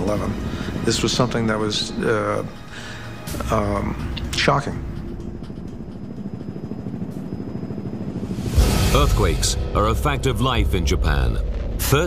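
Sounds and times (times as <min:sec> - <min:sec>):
low rumble: 0:03.1 - 0:12.0.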